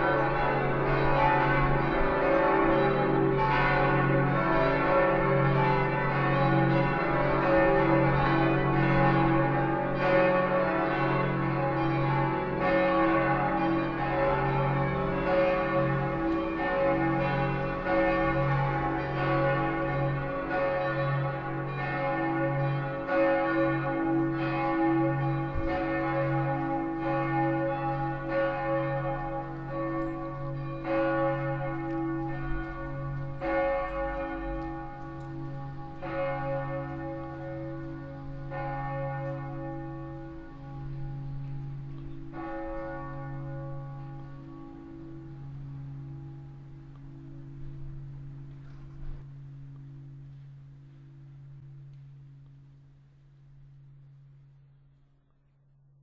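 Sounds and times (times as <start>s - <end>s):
church bells ringing: 0.0s - 54.7s.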